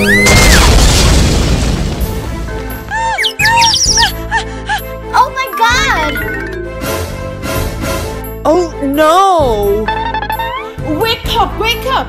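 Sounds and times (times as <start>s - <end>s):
cartoon car crash: 0.0s - 2.2s
background music: 1.3s - 12.0s
squeaky cartoon vocal sounds: 3.1s - 4.2s.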